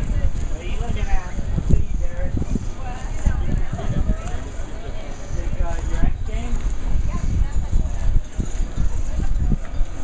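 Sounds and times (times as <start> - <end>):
low rumble on microphone: 0.0 - 10.0
people chattering: 0.0 - 10.0.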